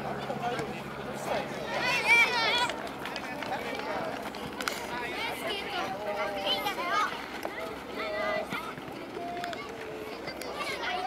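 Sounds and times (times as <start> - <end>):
children calling and cheering: 0.0 - 11.0.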